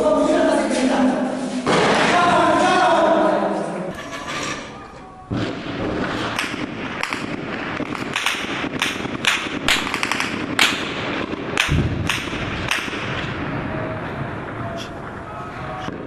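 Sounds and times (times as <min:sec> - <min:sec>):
gunshots: 0:01.6 - 0:02.6, 0:03.9 - 0:16.0
low rumble: 0:11.7 - 0:16.0.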